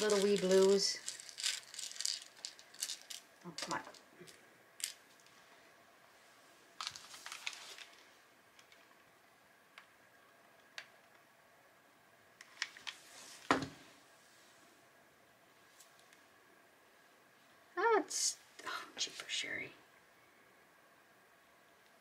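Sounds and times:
plastic beads clicking together: 0.0 - 5.0.

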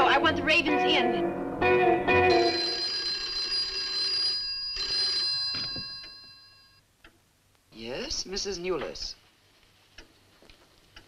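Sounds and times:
old telephone bell ringing: 2.2 - 6.8.

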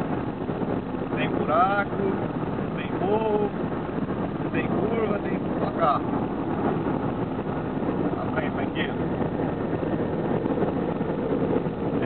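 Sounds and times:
car road and wind noise: 0.0 - 12.0.

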